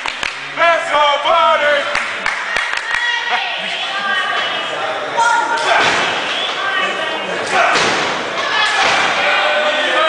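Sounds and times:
voices calling out: 0:00.8 - 0:10.0.

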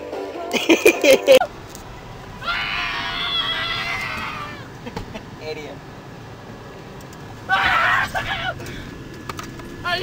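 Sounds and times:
person screaming high-pitched: 0:02.4 - 0:04.7, 0:07.5 - 0:08.6.

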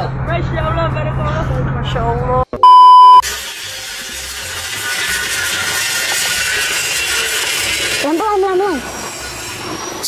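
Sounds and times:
test-tone beep: 0:02.6 - 0:03.2.

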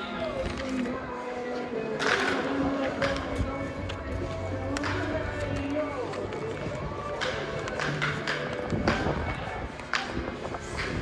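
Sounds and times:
indistinct voices: 0:00.0 - 0:11.0
music: 0:00.0 - 0:11.0
footsteps on concrete: 0:02.4 - 0:11.0.

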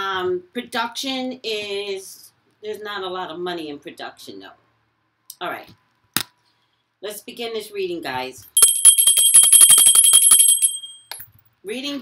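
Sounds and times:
small handbell ringing rapidly: 0:08.6 - 0:11.2.

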